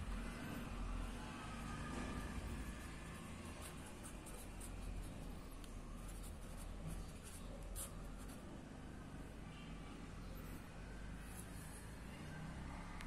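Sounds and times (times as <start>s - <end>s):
pen scratching on paper: 1.9s - 8.5s.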